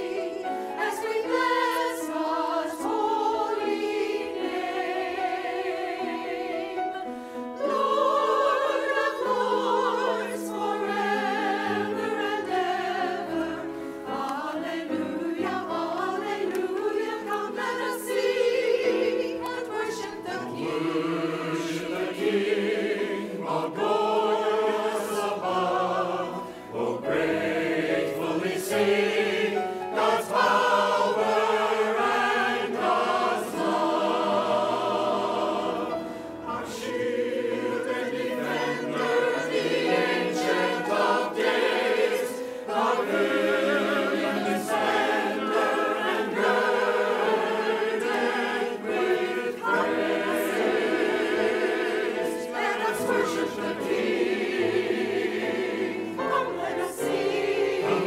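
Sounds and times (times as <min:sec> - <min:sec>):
choir singing: 0:00.0 - 0:58.0.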